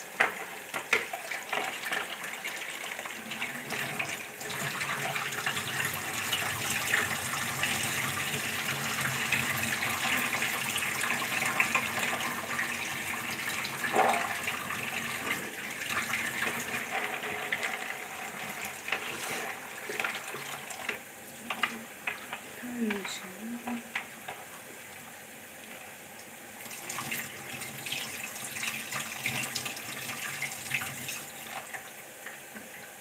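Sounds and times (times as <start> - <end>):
tap water running: 0.0 - 33.0.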